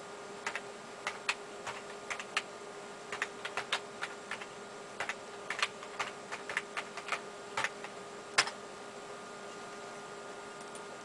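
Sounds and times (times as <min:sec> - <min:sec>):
faint steady hum: 0:00.0 - 0:11.0
computer keyboard typing: 0:00.4 - 0:02.5, 0:03.1 - 0:08.6.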